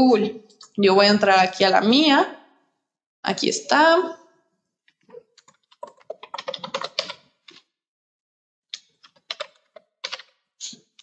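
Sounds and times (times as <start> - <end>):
computer keyboard typing: 5.4 - 7.6, 8.8 - 10.4.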